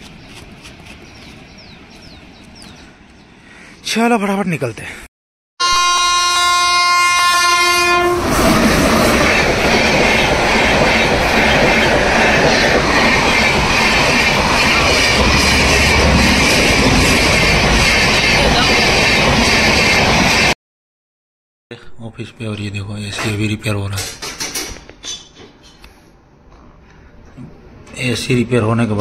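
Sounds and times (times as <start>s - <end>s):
horn steady note: 5.6s - 8.3s.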